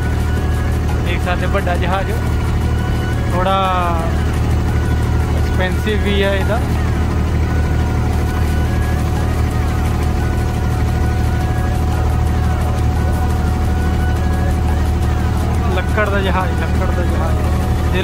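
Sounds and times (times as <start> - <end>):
boat engine droning: 0.0 - 18.0.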